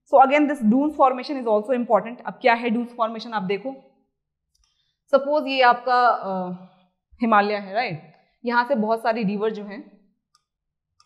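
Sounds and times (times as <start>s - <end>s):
woman lecturing: 0.1s - 3.8s, 5.1s - 6.6s, 7.2s - 9.8s.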